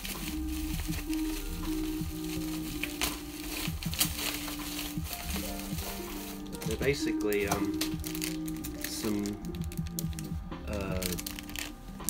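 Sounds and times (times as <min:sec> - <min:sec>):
bubble wrap crinkling: 0:00.0 - 0:12.0
soft background music: 0:00.0 - 0:12.0.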